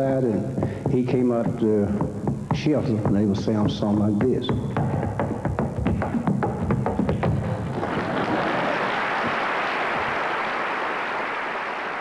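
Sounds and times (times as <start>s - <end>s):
audience applause: 7.7s - 12.0s.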